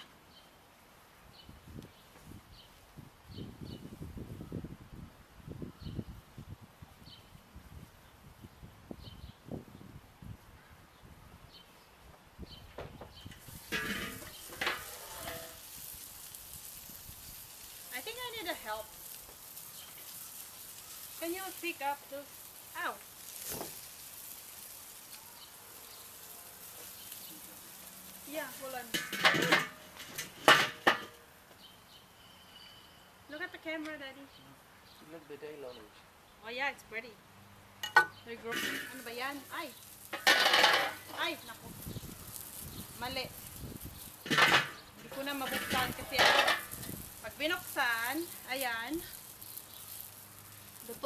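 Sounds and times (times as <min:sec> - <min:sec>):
hot dogs sizzling on grill: 0:00.0 - 0:34.0, 0:34.6 - 0:51.0
small ticks: 0:48.1 - 0:51.0.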